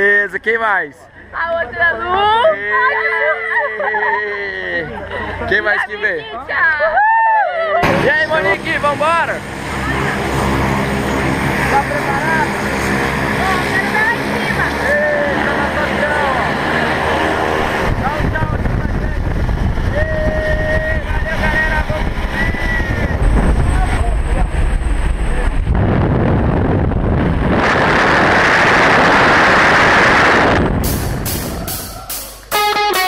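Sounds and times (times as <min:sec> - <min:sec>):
indistinct voices: 0:07.6 - 0:25.7
wind rushing on microphone: 0:07.8 - 0:31.9.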